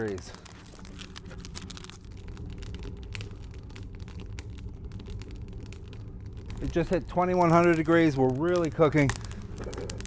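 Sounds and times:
crackles of burning sticks: 0:00.0 - 0:10.0
stove draft rumble: 0:00.0 - 0:10.0.

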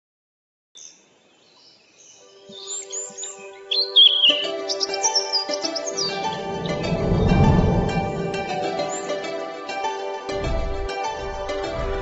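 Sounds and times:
birds chirping: 0:00.8 - 0:10.6
background music: 0:02.1 - 0:12.0.

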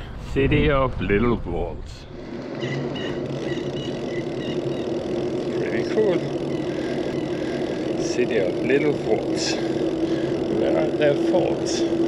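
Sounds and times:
bicycle tyres rolling on pavement: 0:00.0 - 0:12.0
constant low hum: 0:00.0 - 0:12.0.

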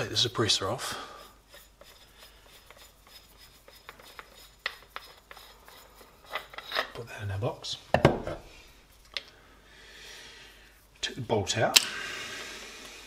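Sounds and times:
metal threads scraping: 0:00.0 - 0:09.4.

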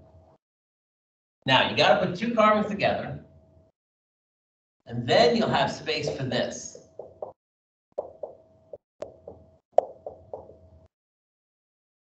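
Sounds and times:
marker tapping on whiteboard: 0:06.8 - 0:07.4, 0:08.0 - 0:08.4, 0:09.0 - 0:10.6.

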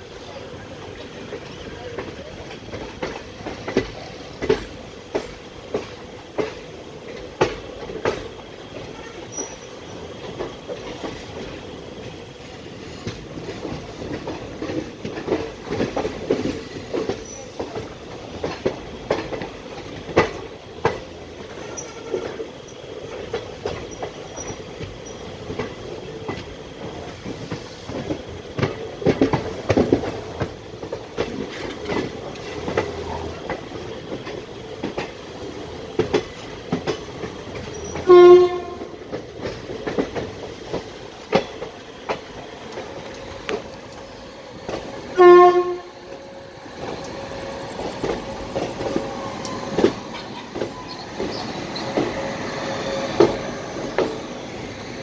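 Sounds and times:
train running rumble: 0:00.0 - 0:55.0
wheels clicking over rail joints: 0:00.3 - 0:55.0
locomotive horn blasts: 0:38.0 - 0:38.9, 0:45.2 - 0:46.0.

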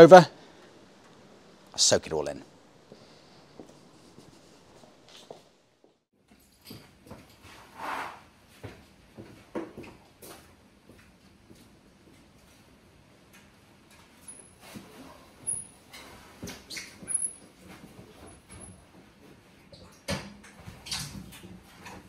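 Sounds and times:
quiet footsteps: 0:02.8 - 0:06.1.

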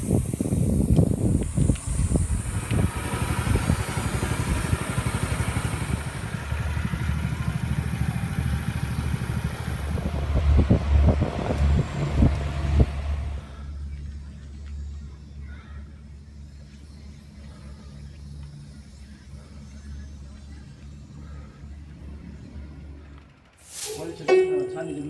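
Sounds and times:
wind rumbling on microphone: 0:00.0 - 0:07.2, 0:08.6 - 0:13.4
small boat engine running: 0:01.4 - 0:14.2.

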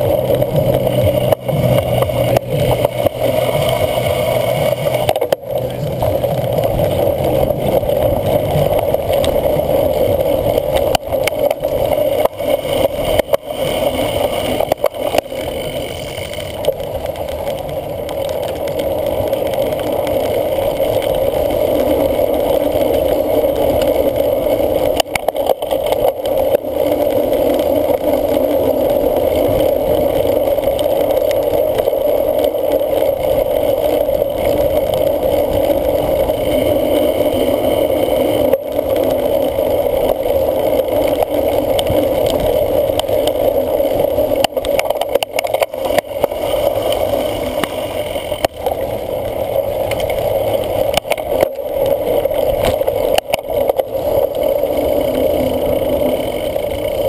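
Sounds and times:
bike tyres rolling over dirt: 0:00.0 - 0:57.0.

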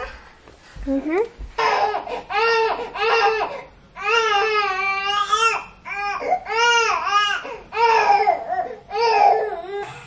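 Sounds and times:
baby crying: 0:01.6 - 0:10.0.

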